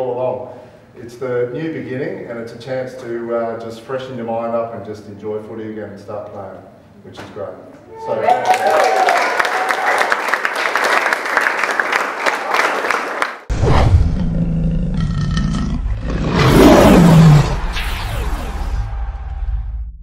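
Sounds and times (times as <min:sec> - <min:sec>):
group clapping and cheering: 0:08.0 - 0:13.5
lion's roar sound effect: 0:13.5 - 0:19.8
deep rumbling intro: 0:13.5 - 0:20.0.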